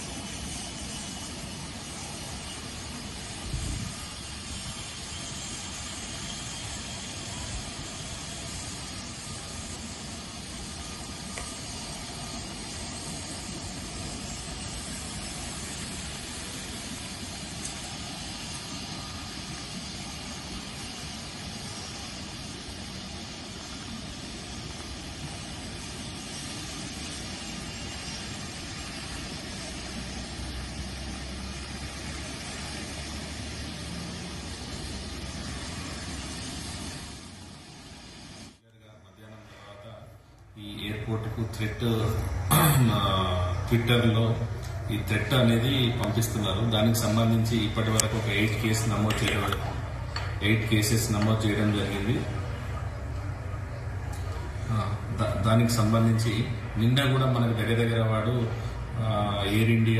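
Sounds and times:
steady background hiss: 0.0s - 59.9s.

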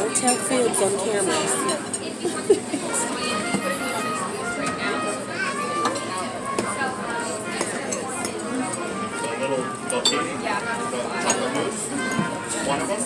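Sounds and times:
cutlery clinking against plates: 0.1s - 2.1s, 5.8s - 6.8s, 7.5s - 10.4s, 11.2s - 13.0s
piped music with saxophone: 2.9s - 13.0s.

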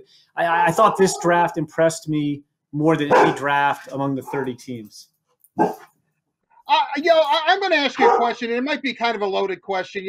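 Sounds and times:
dog barking: 3.1s - 3.5s, 4.3s - 4.5s, 5.6s - 5.8s, 8.0s - 8.4s.

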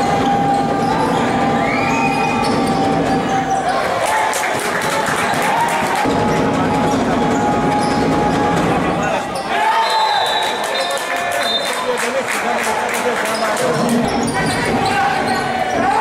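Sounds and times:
sneakers squeaking: 0.0s - 4.0s, 6.0s - 10.9s, 13.3s - 16.0s.

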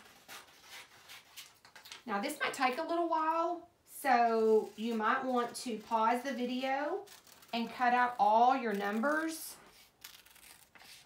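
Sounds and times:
scissors cutting paper: 6.8s - 11.0s
paper rustling: 7.1s - 11.0s.

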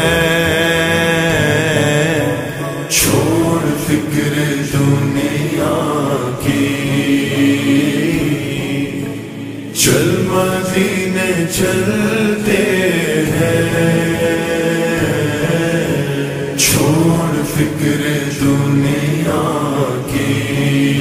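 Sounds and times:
reverb-heavy singing voice: 0.0s - 21.0s.

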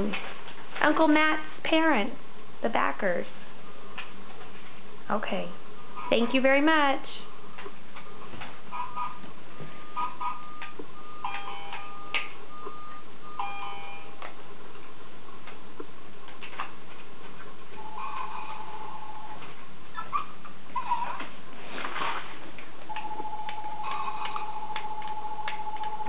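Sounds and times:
toy electronic beeps: 9.8s - 14.2s.

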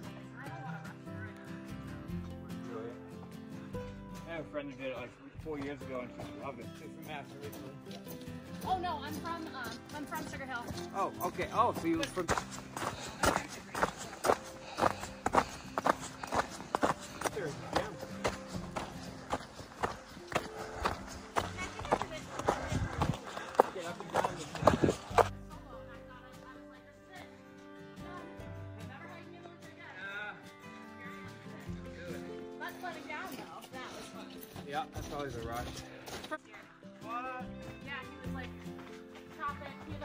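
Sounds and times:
background music: 0.0s - 40.0s
footsteps on packed snow: 8.8s - 25.4s.

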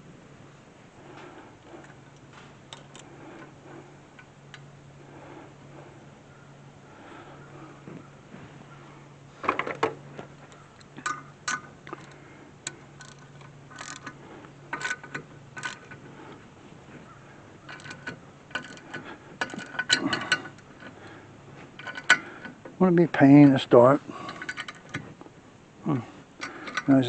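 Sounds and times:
gear puller clinking on metal: 9.4s - 16.4s, 17.6s - 25.2s, 26.4s - 27.0s.

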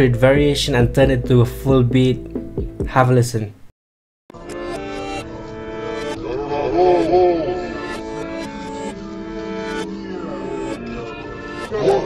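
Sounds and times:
swooping pitch glides: 5.9s - 10.8s.

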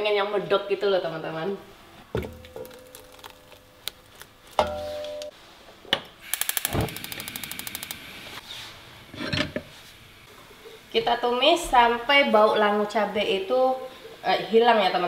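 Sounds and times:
gas igniter ticking: 6.2s - 8.1s.

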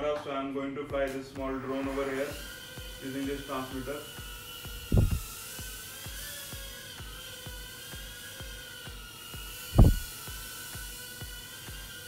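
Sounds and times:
background music with beat: 0.0s - 12.0s
quadcopter motors whining: 1.4s - 12.0s
loud thumps: 4.8s - 5.3s, 9.7s - 10.2s.

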